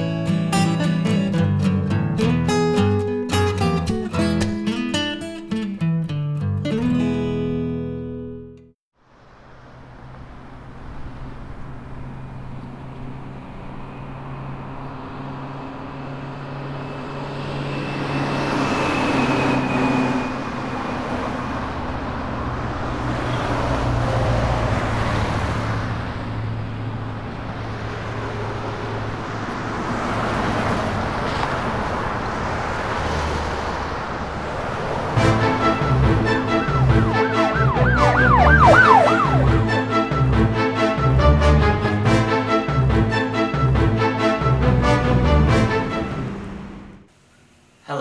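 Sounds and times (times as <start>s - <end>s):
vehicles passing: 9.0s - 47.1s.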